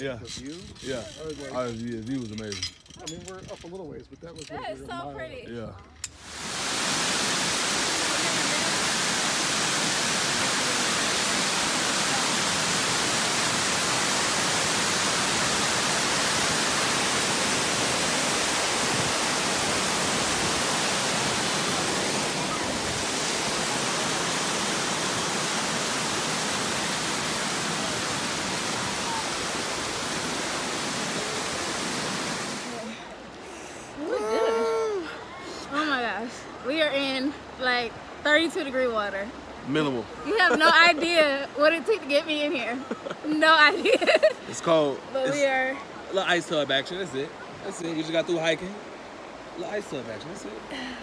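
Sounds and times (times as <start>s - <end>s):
waterfall rushing over rock: 6.2s - 33.3s
person speaking: 40.3s - 41.3s.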